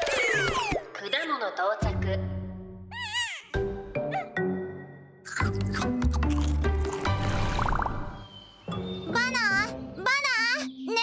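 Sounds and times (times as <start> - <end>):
soft cartoon music: 0.0 - 11.0.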